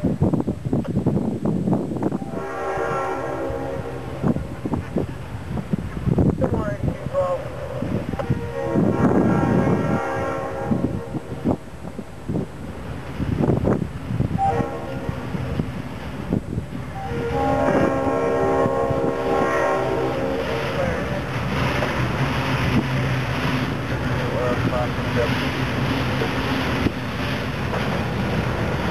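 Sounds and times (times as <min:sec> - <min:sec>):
locomotive horn blasts: 0:02.2 - 0:04.8, 0:08.2 - 0:11.2, 0:14.4 - 0:15.6, 0:16.9 - 0:21.3
freight cars rolling: 0:09.8 - 0:28.9
diesel engine rumble: 0:20.0 - 0:28.9.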